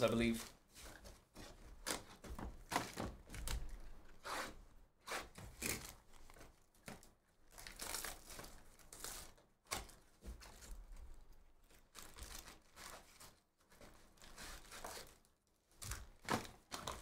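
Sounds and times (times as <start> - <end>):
shrink wrap crinkling and tearing: 5.4 - 17.0.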